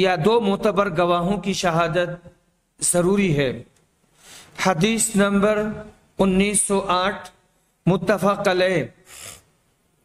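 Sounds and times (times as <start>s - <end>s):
man speaking: 4.6s - 9.4s.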